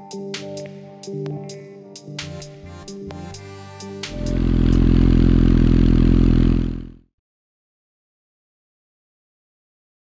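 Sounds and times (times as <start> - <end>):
background music: 0.0 - 4.8
motorcycle engine running: 4.1 - 7.1.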